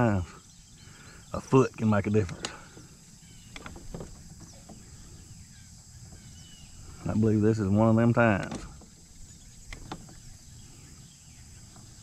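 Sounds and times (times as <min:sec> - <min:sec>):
bird chirps: 0:00.0 - 0:07.3, 0:08.8 - 0:12.0
high insect drone: 0:00.0 - 0:12.0.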